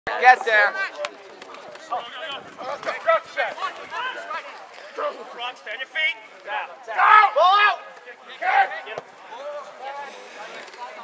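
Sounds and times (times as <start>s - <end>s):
crowd shouting: 1.9s - 10.2s
loud drawn-out yells: 6.9s - 8.9s.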